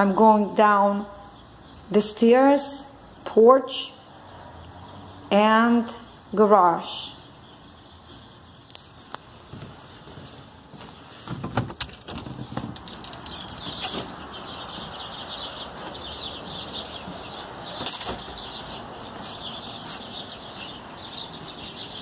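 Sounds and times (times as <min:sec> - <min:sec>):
small birds chirping: 0:00.0 - 0:22.0
footsteps on wooden deck: 0:08.1 - 0:22.0
storm door clunking open: 0:11.3 - 0:14.7, 0:17.6 - 0:18.6.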